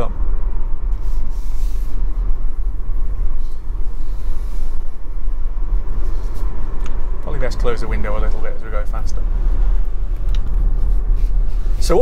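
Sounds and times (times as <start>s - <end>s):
road and wind noise in car: 0.0s - 12.0s.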